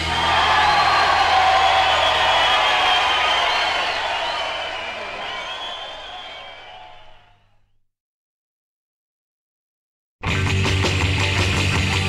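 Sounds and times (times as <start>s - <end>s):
crowd cheering and whooping: 0.0s - 7.4s
rock and roll music: 10.2s - 12.0s.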